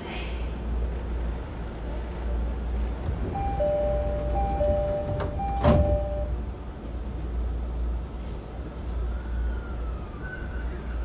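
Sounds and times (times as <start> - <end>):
train car low hum: 0.0 - 11.0
train doors thudding shut: 3.0 - 6.5
two-tone door chime: 3.4 - 6.4.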